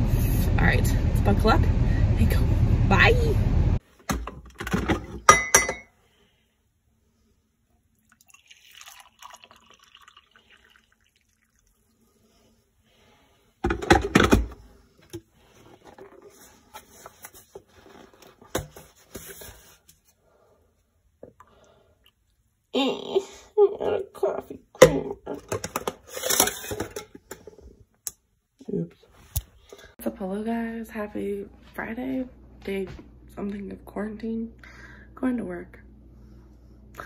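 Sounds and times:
glass carafe and mug clinking: 5.3s - 5.9s, 8.2s - 10.3s
coffee pouring: 7.9s - 12.3s.

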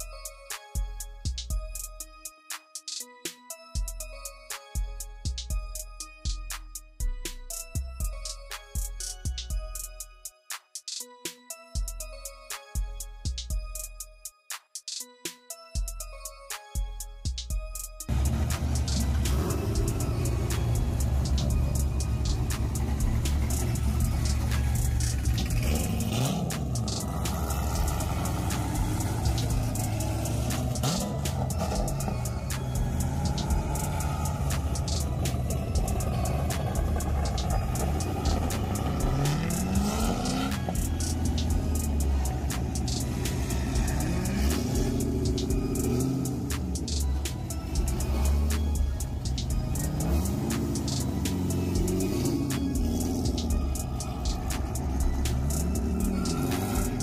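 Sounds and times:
music: 0.0s - 57.0s
car engines rumbling: 18.1s - 57.0s
engine revs: 18.1s - 57.0s.

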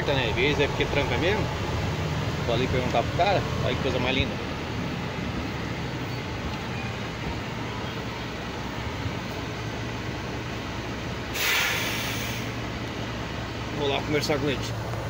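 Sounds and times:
diesel engine idling: 0.0s - 15.0s
air brakes hissing: 11.3s - 12.6s.

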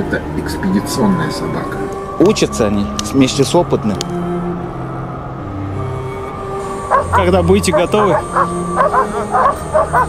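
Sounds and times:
background music: 0.0s - 10.0s
dogs barking and yipping: 6.7s - 10.0s.

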